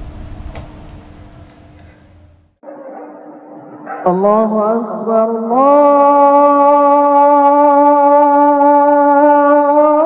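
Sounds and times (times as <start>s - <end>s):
low room rumble: 0.0s - 2.6s
man calling to prayer: 4.0s - 10.0s.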